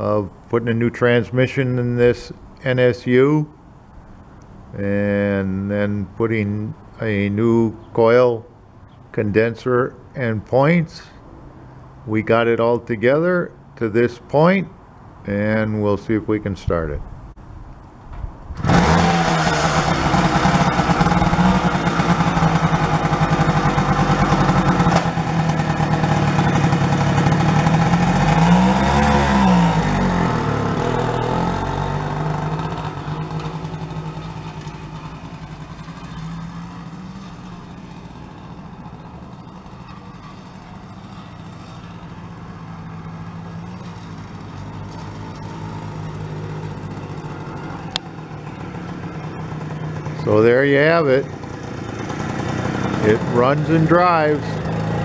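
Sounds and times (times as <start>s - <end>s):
moped engine running and revving: 18.6s - 55.0s.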